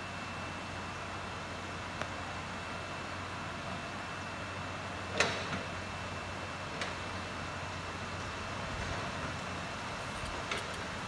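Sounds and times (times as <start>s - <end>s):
machinery running with low hum: 0.0s - 11.0s.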